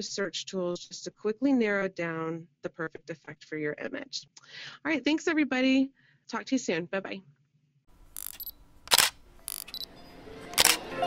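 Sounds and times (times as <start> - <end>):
camera shutter clicks: 8.1 - 9.9, 10.5 - 10.8.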